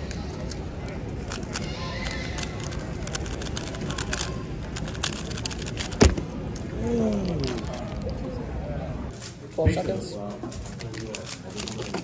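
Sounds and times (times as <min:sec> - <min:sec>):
plastic puzzle cube clicking: 0:01.2 - 0:06.1.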